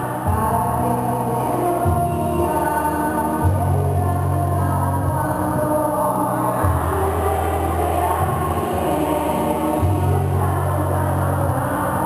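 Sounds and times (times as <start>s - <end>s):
slow music with held bass notes: 0.0s - 12.0s.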